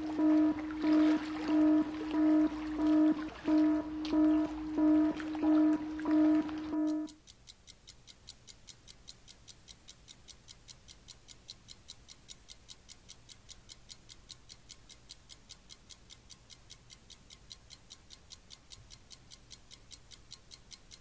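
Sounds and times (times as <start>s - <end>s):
low electronic alarm beeping: 0.0s - 7.2s
clock-like ticking: 0.0s - 21.0s.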